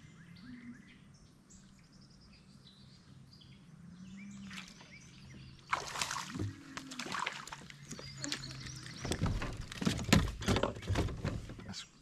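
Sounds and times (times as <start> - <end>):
faint bird chirps: 0.0 - 5.8.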